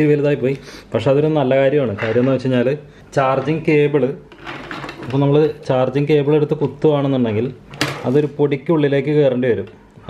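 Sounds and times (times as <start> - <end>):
man talking: 5.1 - 9.8.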